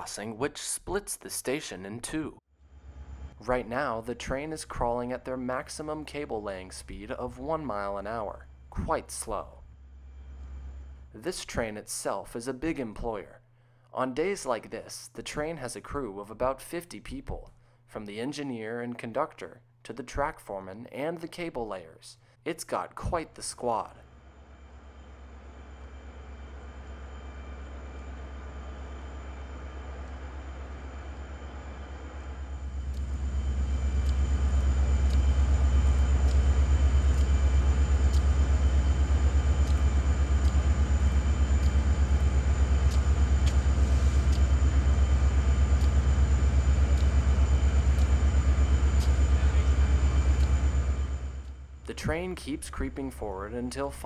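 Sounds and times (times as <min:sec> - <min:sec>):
diesel locomotive engine rumble: 0:02.7 - 0:11.4, 0:24.1 - 0:53.7.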